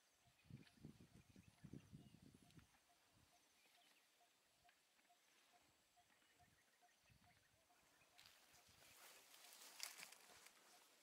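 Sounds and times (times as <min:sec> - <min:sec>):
elephants rustling in grass: 0:08.2 - 0:11.0.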